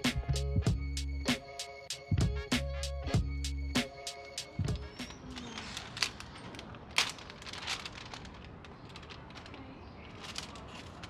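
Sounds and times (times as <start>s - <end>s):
paper bag crinkling: 4.2s - 11.0s.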